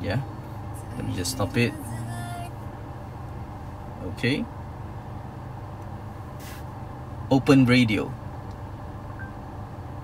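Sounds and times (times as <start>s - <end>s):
car cabin hum: 0.0s - 10.0s
brief hiss: 6.4s - 6.7s.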